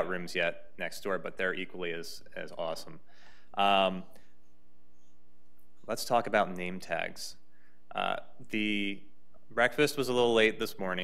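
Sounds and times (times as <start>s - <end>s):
man's voice: 0.0s - 3.0s, 3.6s - 4.1s.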